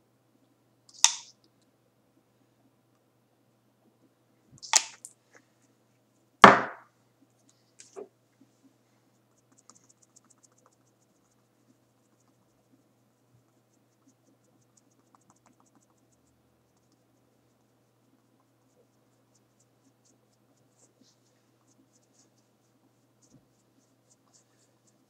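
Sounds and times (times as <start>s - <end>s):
sharp click: 0.9s - 1.3s, 4.6s - 5.1s
knocks of small objects: 6.4s - 6.9s.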